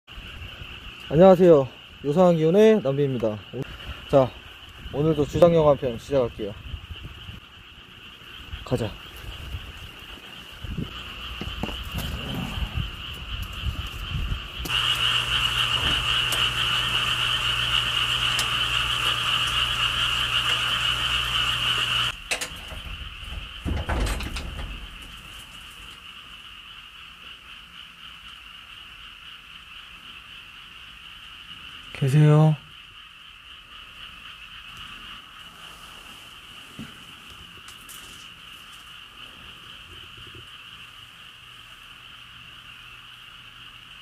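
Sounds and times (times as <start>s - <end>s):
frogs chorus: 0.1s - 44.0s
low hum: 3.4s - 29.8s.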